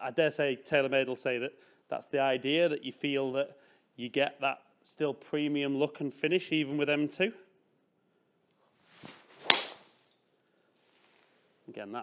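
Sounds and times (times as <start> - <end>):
golf club swing whoosh: 8.8 - 10.0
golf club striking ball crack: 9.4 - 10.1.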